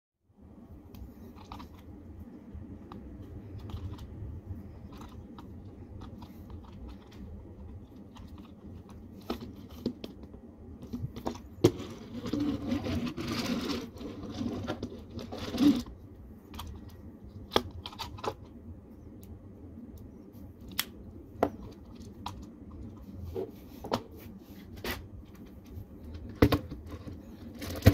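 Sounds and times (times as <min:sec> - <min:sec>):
toy scraping on wooden table: 0:11.7 - 0:15.9.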